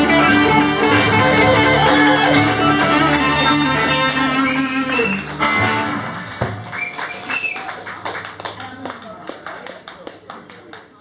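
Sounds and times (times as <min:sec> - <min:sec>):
people talking: 0:08.5 - 0:11.0.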